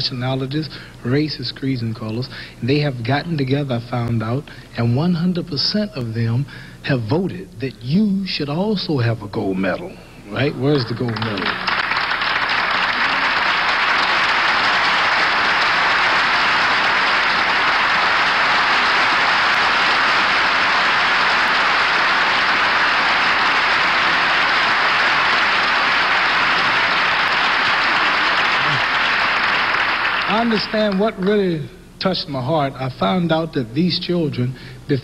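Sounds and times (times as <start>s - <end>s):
audience applauding: 10.3s - 31.3s.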